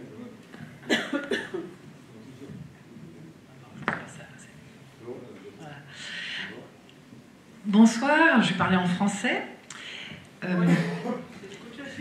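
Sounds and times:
person coughing: 0:00.8 - 0:01.7, 0:10.6 - 0:11.2.

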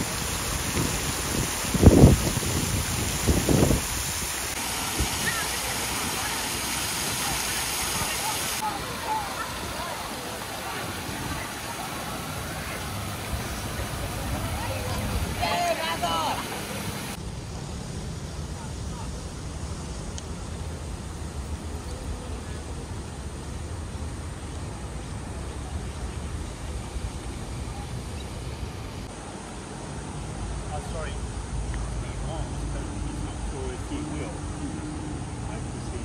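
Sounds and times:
fountain water splashing: 0:00.0 - 0:36.0.

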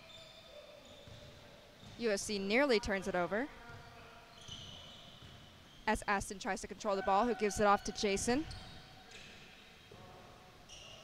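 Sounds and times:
faint basketball court noise: 0:00.0 - 0:11.0.

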